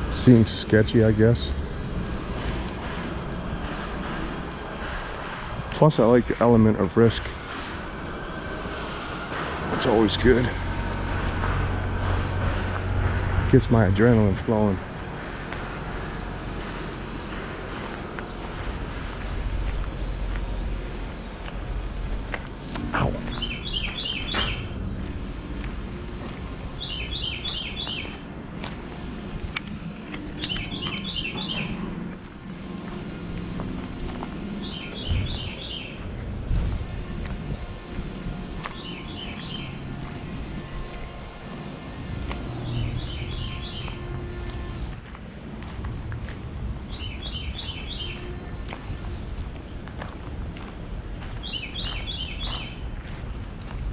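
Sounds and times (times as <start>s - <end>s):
low outdoor rumble: 0.0s - 53.9s
songbird singing: 18.3s - 53.4s.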